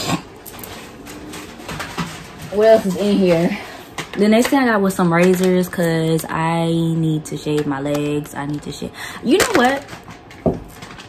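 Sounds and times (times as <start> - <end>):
rummaging in a shopping bag: 0.0 - 6.5.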